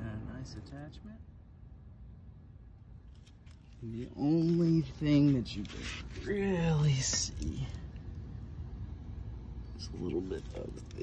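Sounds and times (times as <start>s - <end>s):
faint low background noise: 0.0s - 11.0s.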